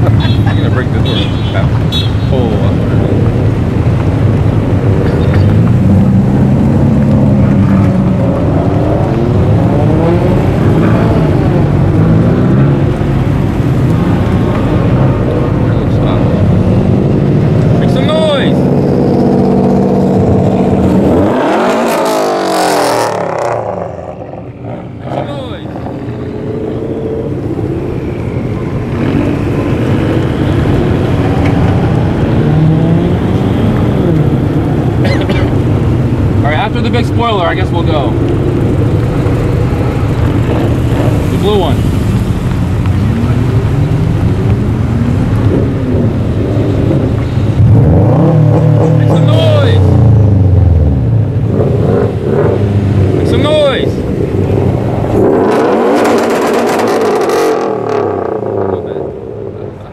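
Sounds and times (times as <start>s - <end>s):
cars driving past revving: 0.0s - 59.9s.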